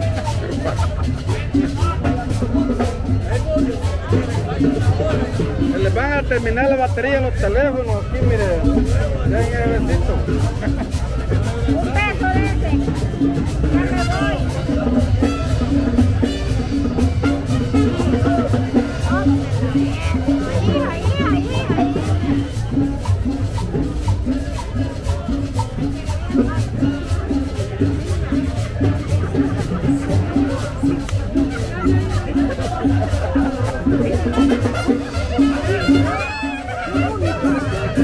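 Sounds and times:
crowd talking: 0:00.0 - 0:38.0
latin dance music: 0:00.0 - 0:38.0
maracas: 0:00.0 - 0:38.0.

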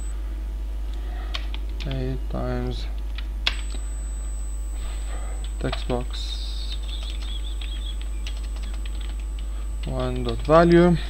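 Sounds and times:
steady low hum: 0:00.0 - 0:11.0
computer keyboard typing: 0:05.4 - 0:10.8.

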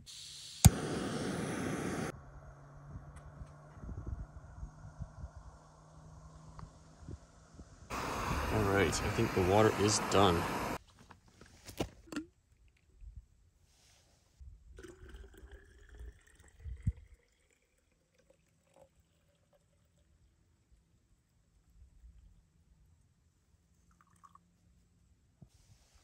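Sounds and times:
water pouring into bottle: 0:14.8 - 0:19.9.

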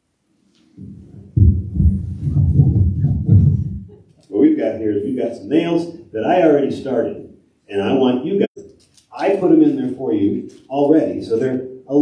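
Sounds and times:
microphone rubbing against clothing: 0:00.6 - 0:04.0.

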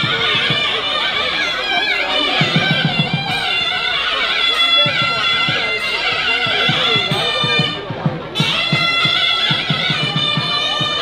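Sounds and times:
low drum strokes: 0:00.0 - 0:11.0
nasal reed melody: 0:00.0 - 0:11.0.

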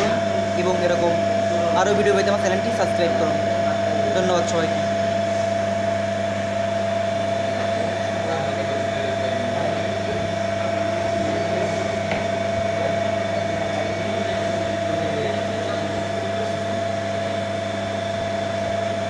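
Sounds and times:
electric motor humming and whining: 0:00.0 - 0:19.0.

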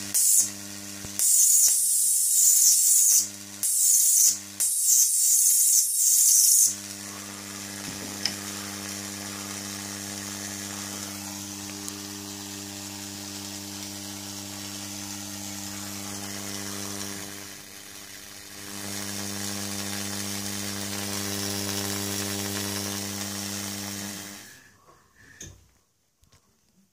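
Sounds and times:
tesla coil spark buzzing: 0:00.0 - 0:24.7.

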